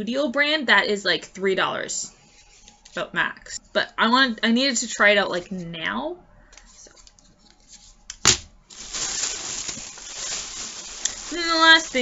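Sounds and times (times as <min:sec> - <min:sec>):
packaging rustling: 0:07.0 - 0:12.0.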